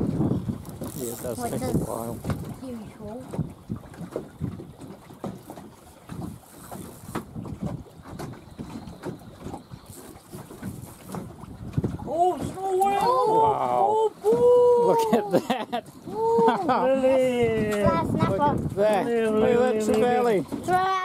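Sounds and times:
knocks on boat: 0.0 - 9.7, 10.3 - 12.8, 17.4 - 19.0
wind on microphone: 0.0 - 15.1, 16.0 - 20.9
water against boat hull: 0.0 - 21.0
person exclaiming: 12.1 - 15.4, 16.1 - 16.8.

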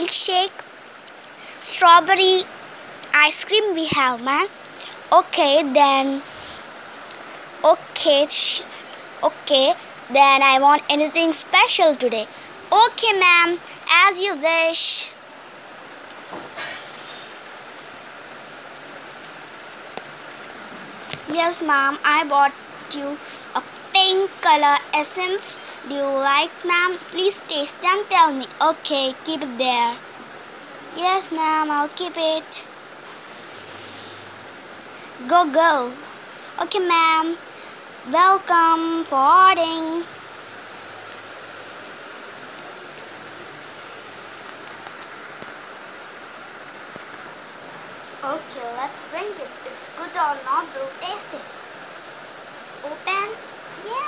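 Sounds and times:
microphone hiss: 0.0 - 54.0.

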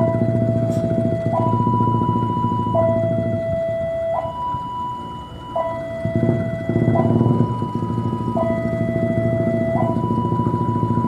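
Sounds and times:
electronic two-tone warning: 0.0 - 11.0
locomotive rumbling: 0.0 - 11.0.

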